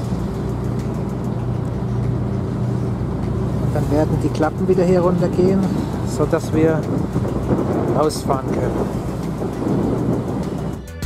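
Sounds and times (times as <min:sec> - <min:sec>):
ferry engines rumbling: 0:00.0 - 0:11.0.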